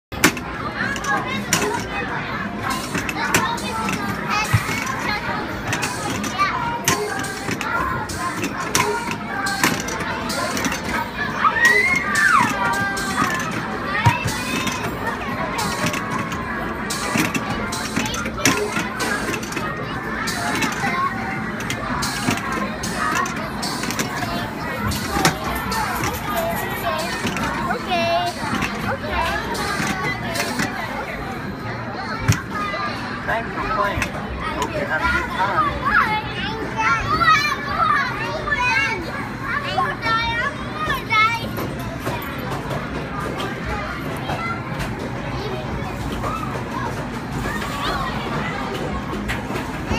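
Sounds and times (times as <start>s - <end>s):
crowd chatter: 0.0s - 49.9s
children's voices: 0.2s - 49.9s.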